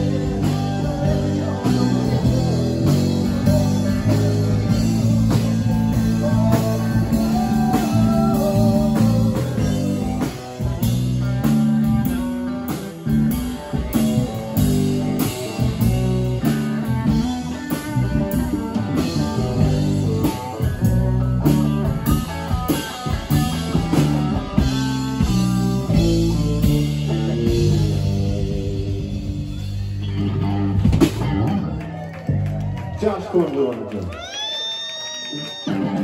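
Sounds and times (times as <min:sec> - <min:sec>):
drum kit steady beat: 0:00.0 - 0:31.4
electric guitar lead line: 0:00.0 - 0:32.8, 0:34.2 - 0:36.0
electric bass: 0:00.0 - 0:33.2.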